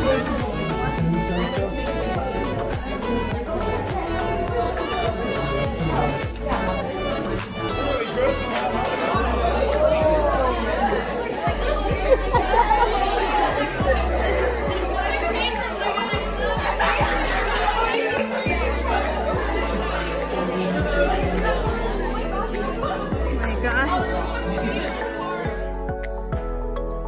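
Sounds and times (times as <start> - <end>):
music with deep bass line: 0.0 - 15.6, 18.5 - 27.0
crowd chattering in a hall: 0.0 - 27.0.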